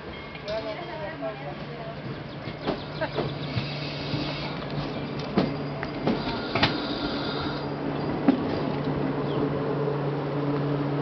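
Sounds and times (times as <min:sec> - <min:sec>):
electric train rolling slowly: 0:00.0 - 0:11.0
train wheels clunking: 0:02.0 - 0:09.6.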